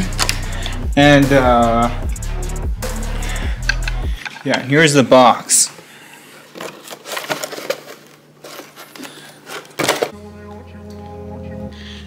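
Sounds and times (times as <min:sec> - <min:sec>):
background music: 0:00.0 - 0:04.2, 0:10.1 - 0:12.0
cardboard box clicks and rustles: 0:06.6 - 0:10.1.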